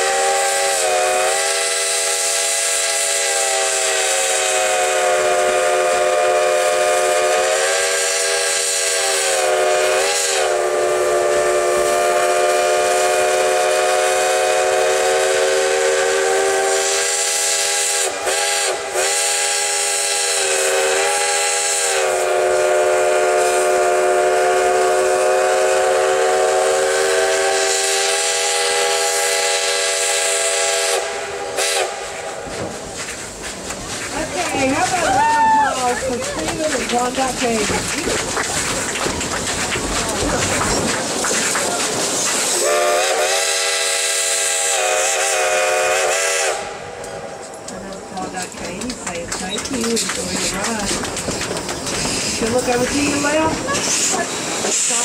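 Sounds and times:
steam locomotive chime whistle: 0.0 - 32.5, 42.6 - 48.4
steam hissing: 0.0 - 55.0.

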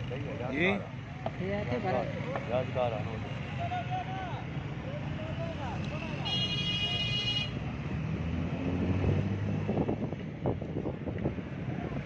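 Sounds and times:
vehicle engine rumble: 0.0 - 12.0
high-pitched vehicle horn: 6.2 - 7.6.

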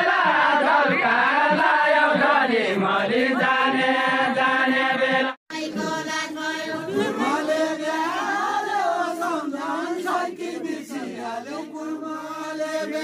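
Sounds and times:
men singing in unison: 0.0 - 13.0
second group singing: 0.0 - 13.0.

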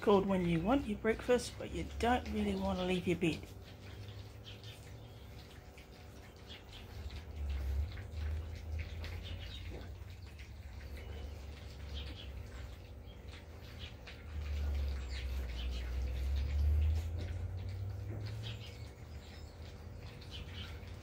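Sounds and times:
puppies chewing dry kibble: 0.0 - 21.0.

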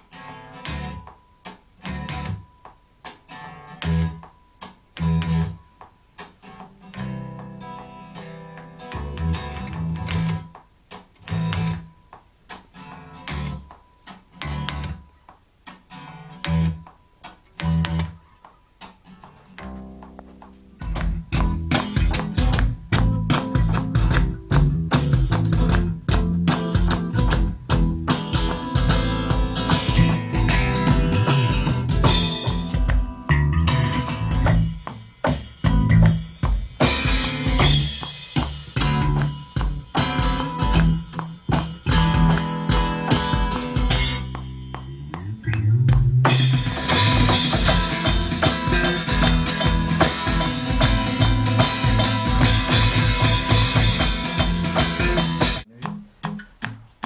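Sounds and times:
electric bass guitar plucked: 0.1 - 1.2, 1.8 - 2.6, 3.4 - 5.7, 6.5 - 10.6, 11.2 - 12.0, 12.8 - 13.8, 14.4 - 15.0, 16.0 - 16.9, 17.5 - 18.2, 19.2 - 57.0
full band with drums: 20.5 - 45.2, 45.8 - 56.7.

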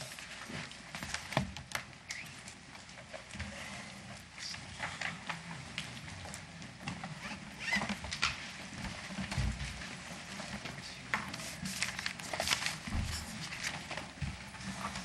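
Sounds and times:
rustling: 0.0 - 15.0
footsteps: 7.9 - 15.0.

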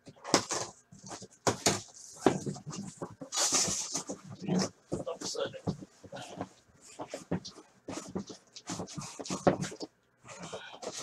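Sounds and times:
sharp knocks of boxes: 0.1 - 4.1
boxes scraping and rustling: 0.2 - 11.0.

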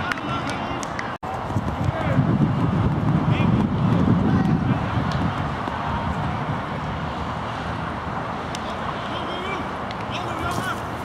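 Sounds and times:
players calling and shouting: 0.0 - 11.0.

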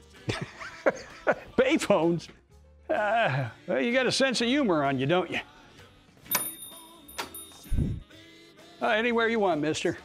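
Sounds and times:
shop door bell ringing: 6.3 - 8.0.

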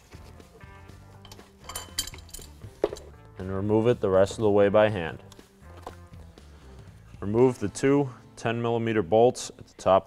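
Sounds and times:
soft background music: 0.0 - 10.0
wrench clinking on metal nut: 1.2 - 3.1.

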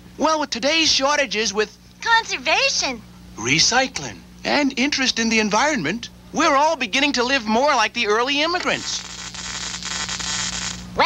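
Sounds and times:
low electrical hum: 0.0 - 11.0
static-like hiss: 0.0 - 11.0.

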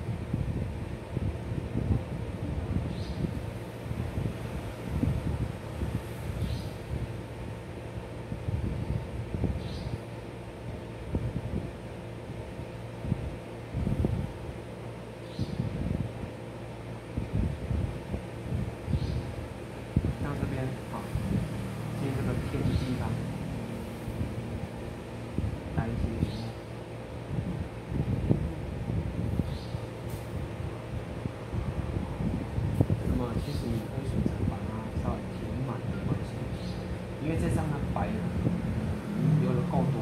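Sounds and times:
low rumbling noise: 0.0 - 40.0
steady machine hum: 0.0 - 40.0
indistinct voices: 37.2 - 40.0.

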